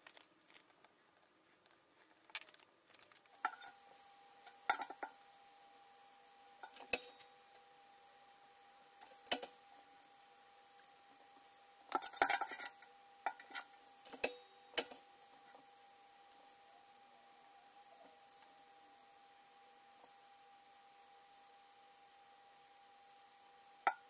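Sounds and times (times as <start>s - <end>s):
faint high hum: 0.0s - 24.0s.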